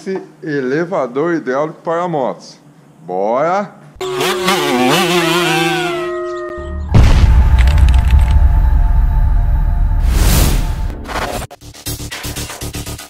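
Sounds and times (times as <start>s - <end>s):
wolf howl: 4.0s - 6.9s
music: 6.0s - 13.0s
deep rumble: 6.8s - 11.1s.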